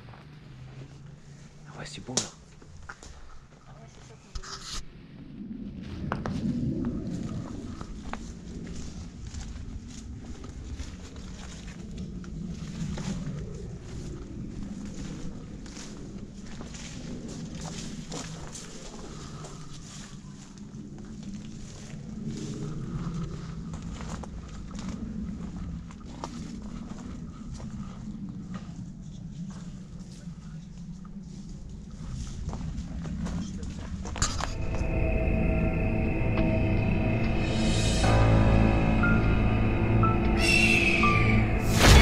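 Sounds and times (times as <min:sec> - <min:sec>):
handheld camera rumble: 0:02.2 - 0:34.9
footsteps crunching on leaves: 0:07.1 - 0:25.0
eerie music: 0:34.2 - 0:42.0.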